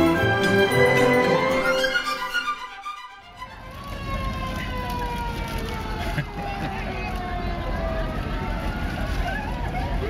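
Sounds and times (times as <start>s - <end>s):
emergency siren winding down: 0.0s - 10.0s.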